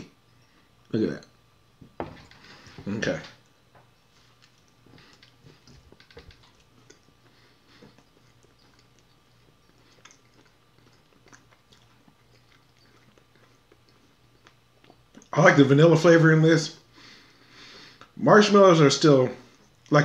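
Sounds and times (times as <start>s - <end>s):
soft chewing: 0.2s - 15.4s, 19.4s - 20.0s.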